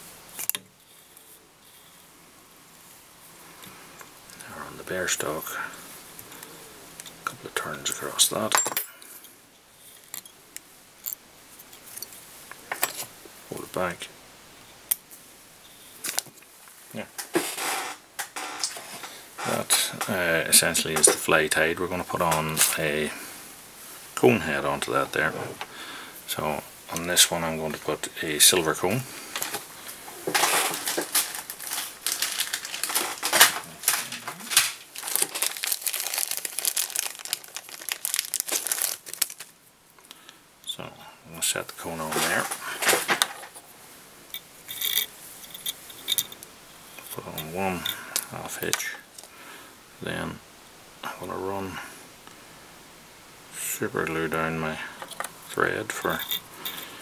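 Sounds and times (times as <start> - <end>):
plastic packaging crinkling: 29.3 - 39.6.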